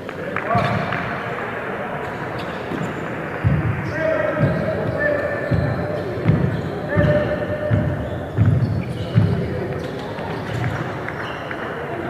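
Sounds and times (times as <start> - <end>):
basketball dribbling on gym floor: 4.4 - 9.5.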